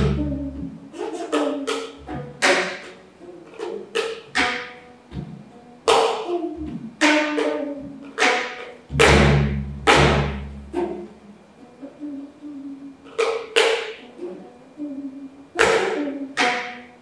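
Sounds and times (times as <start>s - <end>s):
zither struck and plucked: 3.6s - 11.2s
heavy low thud: 8.9s - 11.0s.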